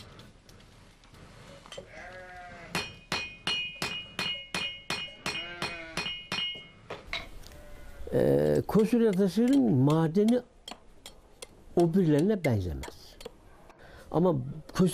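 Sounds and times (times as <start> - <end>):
bleating animal calls: 1.9 - 2.8, 5.2 - 6.1, 7.4 - 8.4
hammer chipping stone: 8.7 - 13.3.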